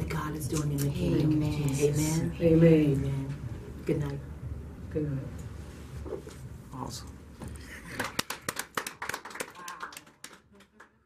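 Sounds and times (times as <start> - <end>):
people clapping: 7.8 - 11.0.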